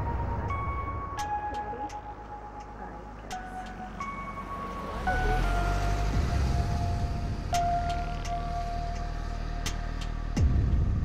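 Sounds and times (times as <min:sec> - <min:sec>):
background music: 0:00.0 - 0:11.0
bus engine rumbling: 0:00.0 - 0:11.0.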